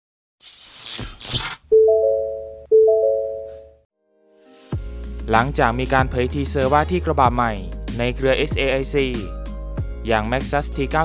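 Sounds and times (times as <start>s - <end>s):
electronic chime notes: 1.8s - 3.8s.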